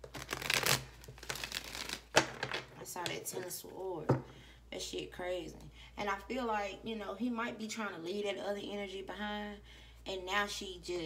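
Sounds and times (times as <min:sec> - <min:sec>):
cards being shuffled by hand: 0:00.0 - 0:02.6.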